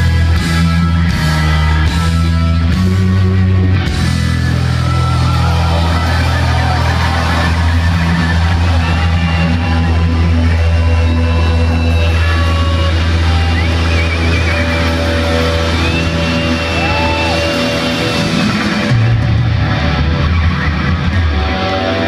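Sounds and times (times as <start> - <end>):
bass guitar: 0.0 - 22.0
distorted electric guitars: 0.0 - 22.0
drums: 0.0 - 22.0.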